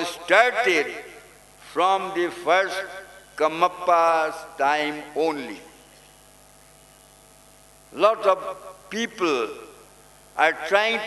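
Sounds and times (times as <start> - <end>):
electrical mains hum: 0.0 - 11.0
microphone hiss: 0.0 - 11.0.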